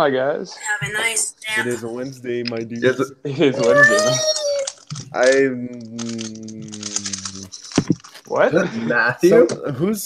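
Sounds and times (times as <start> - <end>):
speed cube layers clicking: 4.4 - 8.1.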